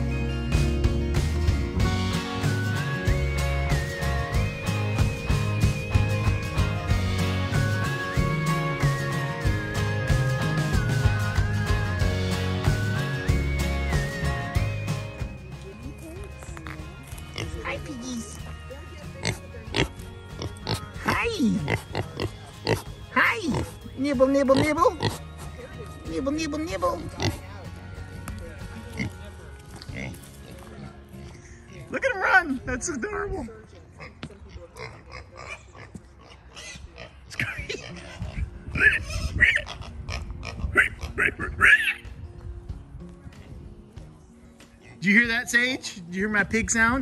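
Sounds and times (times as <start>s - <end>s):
background music with held notes: 0.0s - 33.4s, 37.4s - 47.0s
pigs grunting: 19.2s - 23.9s, 24.5s - 25.6s, 27.0s - 27.5s, 33.9s - 42.0s.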